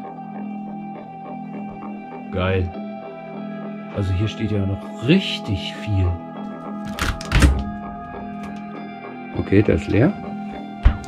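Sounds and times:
background guitar music: 0.0s - 11.0s
refrigerator door thunks: 6.9s - 8.6s, 10.8s - 11.0s.

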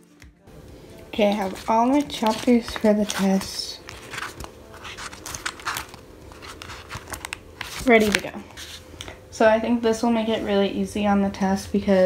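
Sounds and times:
paper rustling and crinkling: 1.2s - 9.1s.

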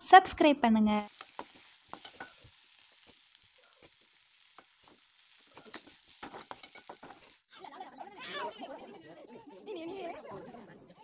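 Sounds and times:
food sizzling in a pan: 0.2s - 8.4s
spatula scraping a pan: 1.1s - 7.5s.

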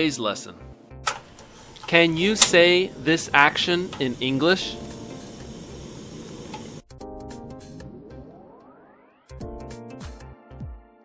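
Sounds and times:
gas stove burner hissing: 1.1s - 6.9s.

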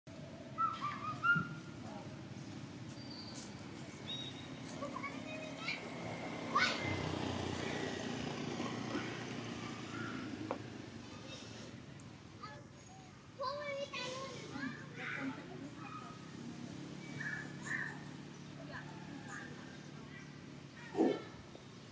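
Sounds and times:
low outdoor background: 0.1s - 21.9s.

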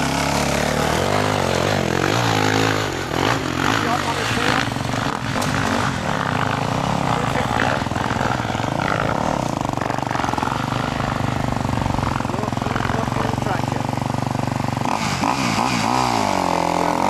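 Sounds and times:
dirt bike engine running: 0.0s - 17.0s.

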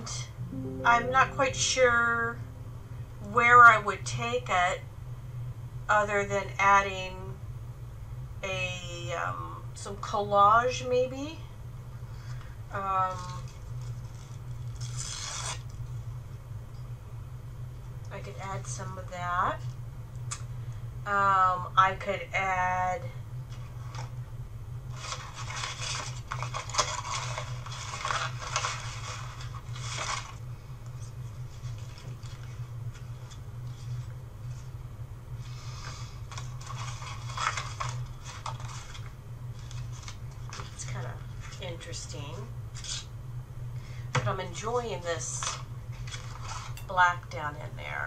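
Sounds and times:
steady low hum: 0.0s - 15.0s, 15.7s - 48.0s
paper rustling and crackling: 24.9s - 30.4s, 36.3s - 40.8s.

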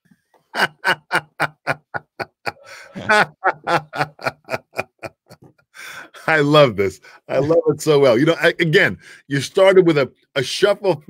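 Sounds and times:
man laughing heartily: 0.5s - 6.3s.

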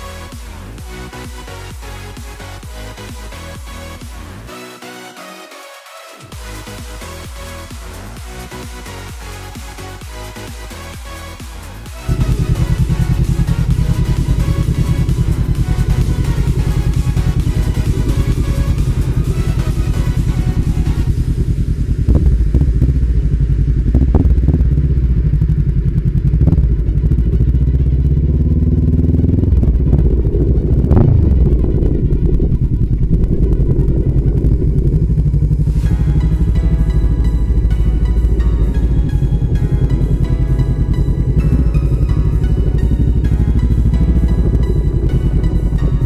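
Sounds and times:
electronic music: 0.0s - 46.0s
motorcycle engine running: 6.3s - 46.0s.

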